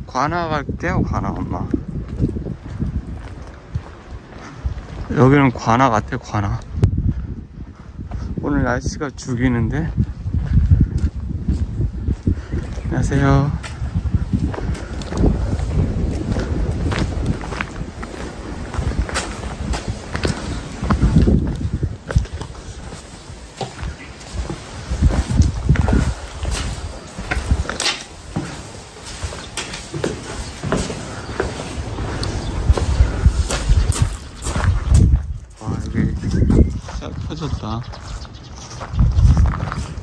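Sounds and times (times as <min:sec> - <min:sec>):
wind rumbling on microphone: 0:00.0 - 0:40.0
footsteps walking: 0:01.3 - 0:08.3, 0:09.8 - 0:40.0.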